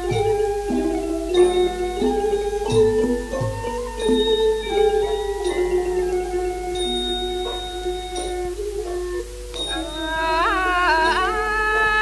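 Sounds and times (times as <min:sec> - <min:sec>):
light percussion strike: 0:00.0 - 0:11.4
long held melodic note: 0:00.0 - 0:12.0
mallet percussion ensemble: 0:00.0 - 0:12.0.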